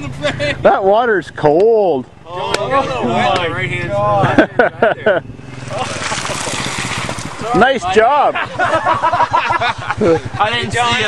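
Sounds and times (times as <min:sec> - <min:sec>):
off-road vehicle engine: 0:00.0 - 0:11.0
water splashing spray: 0:05.5 - 0:07.5.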